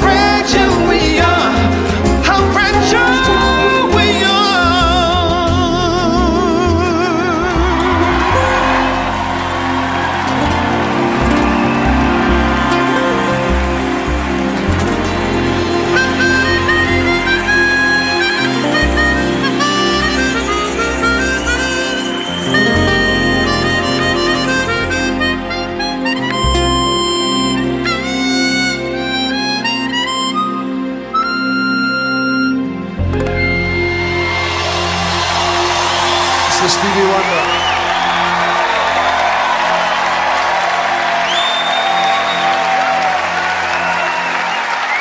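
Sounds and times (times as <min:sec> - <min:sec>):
bass line: 0:00.0 - 0:39.5
sustained chords: 0:00.0 - 0:39.8
band accompaniment: 0:00.0 - 0:45.0
harmonica solo: 0:00.0 - 0:45.0
hissing cymbal wash: 0:33.8 - 0:38.3.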